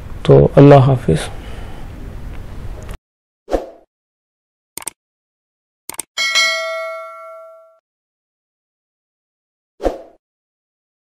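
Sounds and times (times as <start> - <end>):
bright bell chime: 6.2 - 7.8.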